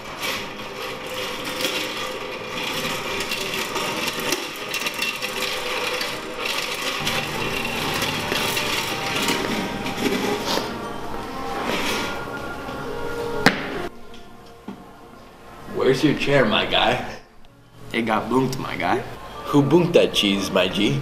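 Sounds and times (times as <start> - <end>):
chair legs scraping on floor: 0.0 - 13.9.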